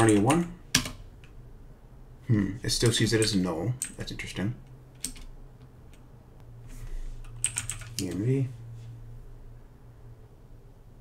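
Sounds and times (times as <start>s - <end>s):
typing on computer keyboard: 0.0s - 1.4s, 2.8s - 4.1s, 5.0s - 6.0s, 7.2s - 8.2s
low steady hum: 0.0s - 11.0s.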